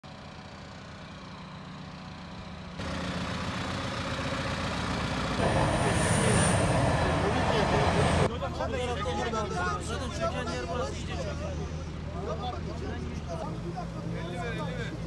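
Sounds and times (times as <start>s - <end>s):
diesel engines idling: 0.1s - 8.4s
people's voices: 5.4s - 15.0s.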